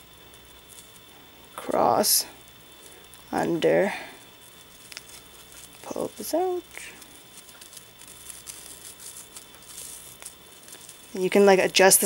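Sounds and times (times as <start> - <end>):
ribbon rustling and ticking: 0.3 - 1.2, 4.3 - 12.0.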